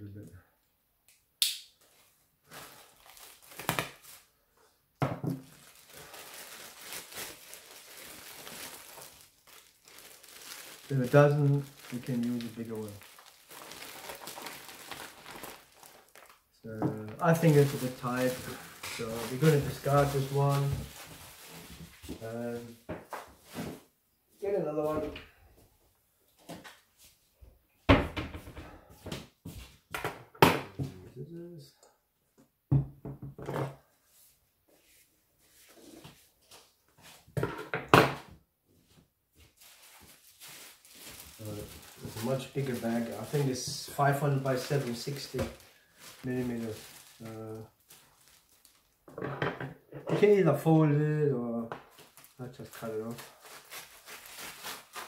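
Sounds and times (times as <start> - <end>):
plastic bag crinkling: 2.4 - 4.3, 5.4 - 22.8, 39.6 - 49.1, 51.8 - 55.0.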